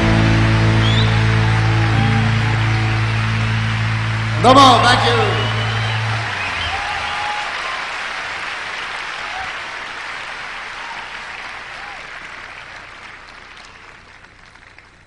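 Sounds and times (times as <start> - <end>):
audience applauding: 0.0 - 15.0.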